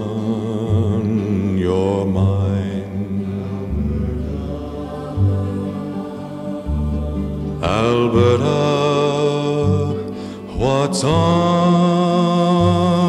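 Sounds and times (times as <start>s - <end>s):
man singing folk ballad: 0.0s - 13.0s
low sustained tones: 1.6s - 9.9s.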